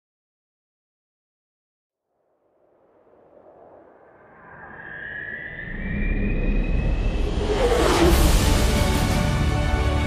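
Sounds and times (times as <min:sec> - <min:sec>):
whooshing surge: 0:02.4 - 0:09.5.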